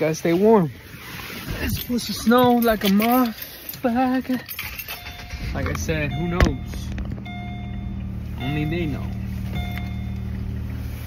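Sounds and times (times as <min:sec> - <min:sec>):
car engine idling: 0:03.6 - 0:11.0.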